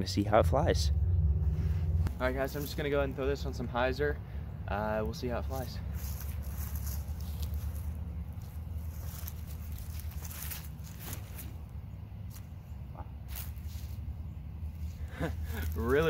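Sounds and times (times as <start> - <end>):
low background rumble: 0.0 - 16.0
footsteps on grass: 5.4 - 16.0
clothing rustle: 6.0 - 11.7.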